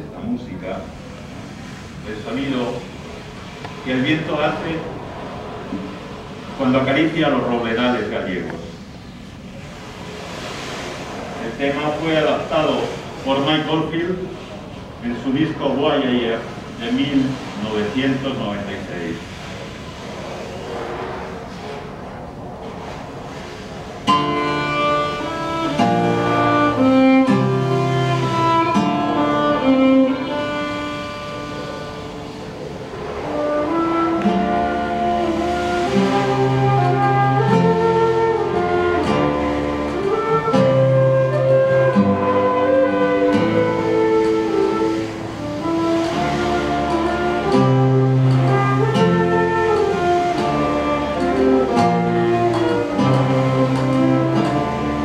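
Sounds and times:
acoustic ensemble instrumental piece: 0:08.8 - 0:55.0.

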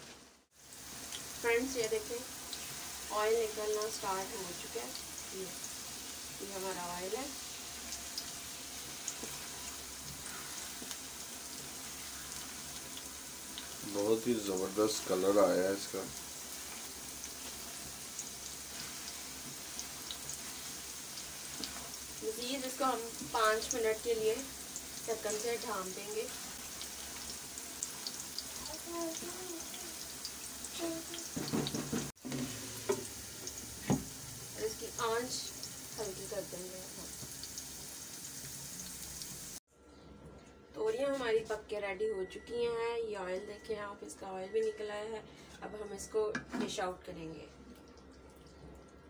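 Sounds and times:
vegetables sizzling in oil: 0:00.0 - 0:39.6.

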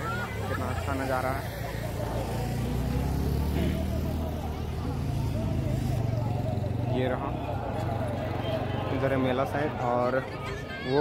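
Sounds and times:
faint voices: 0:00.0 - 0:11.0
traffic rumble: 0:00.0 - 0:11.0.

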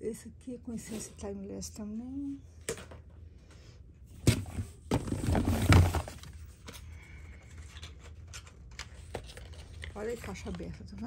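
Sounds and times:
rummaging among plastic bottles: 0:04.1 - 0:11.0.

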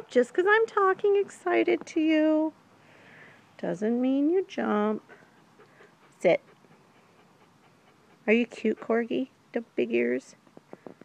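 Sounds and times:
puppy panting: 0:04.8 - 0:09.8.

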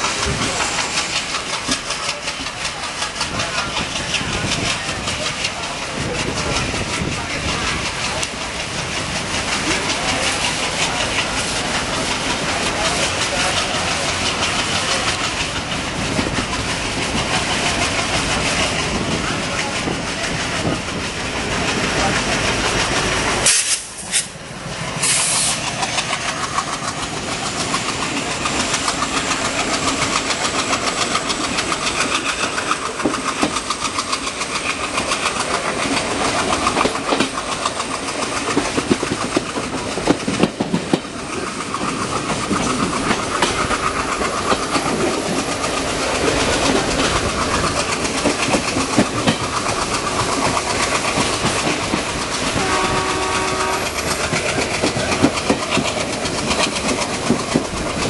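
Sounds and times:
train wheels clattering over rails: 0:00.0 - 0:58.0
locomotive horn: 0:52.6 - 0:54.0.

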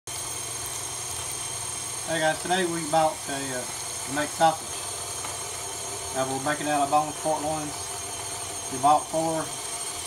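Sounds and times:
stand mixer motor whining: 0:00.1 - 0:10.0.

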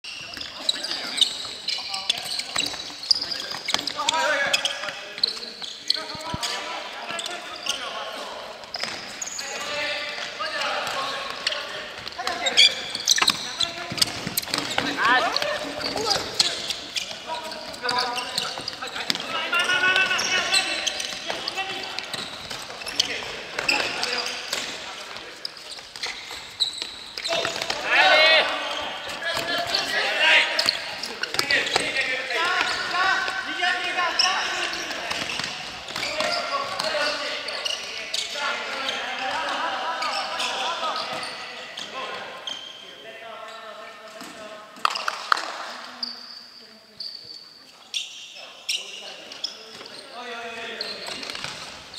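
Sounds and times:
players shouting: 0:27.2 - 0:30.8.

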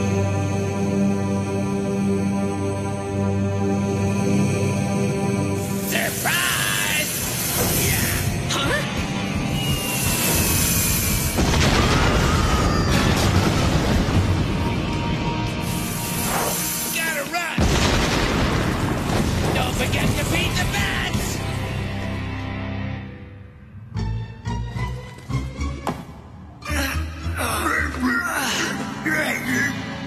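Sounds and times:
background music: 0:00.0 - 0:30.0
bomb blast: 0:10.3 - 0:15.2, 0:17.6 - 0:20.8
rumbling rockfall: 0:11.4 - 0:14.8, 0:17.6 - 0:20.9.

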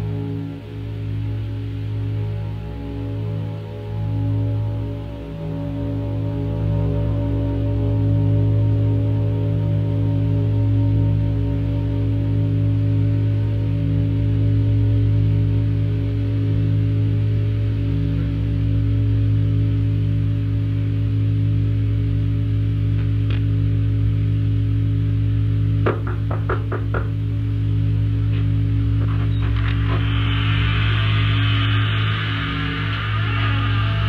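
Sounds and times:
ambient drone music: 0:00.0 - 0:34.0
hiss: 0:29.7 - 0:34.0.

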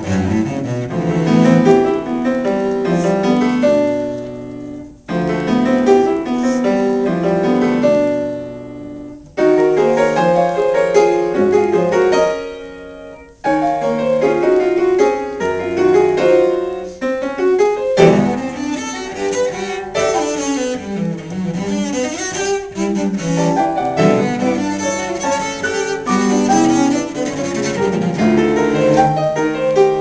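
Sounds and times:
cello: 0:00.0 - 0:30.0
grand piano: 0:00.0 - 0:30.0.

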